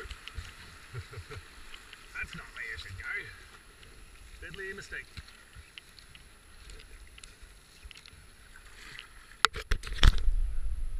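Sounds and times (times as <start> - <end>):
paddle drips and splashes: 0.0 - 10.2.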